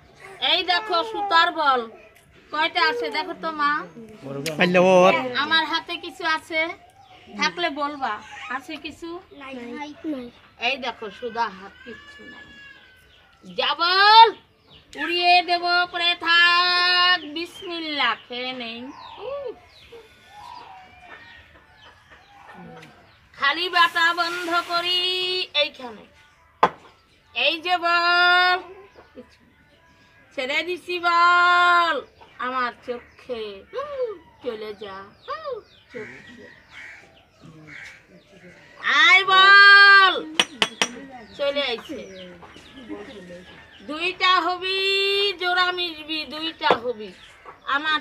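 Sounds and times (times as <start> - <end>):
chickens clucking: 18.9 - 23.3, 40.2 - 43.8
murmuring voices: 35.3 - 47.6.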